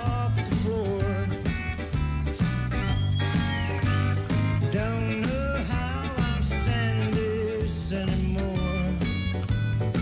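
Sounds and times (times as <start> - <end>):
man singing slow country song: 0.0 - 1.5, 4.6 - 9.4
band accompaniment: 0.0 - 10.0.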